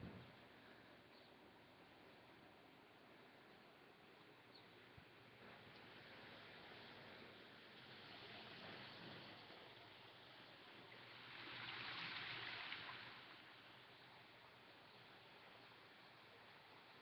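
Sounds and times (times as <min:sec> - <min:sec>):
faint hiss of running water: 0:00.4 - 0:17.0.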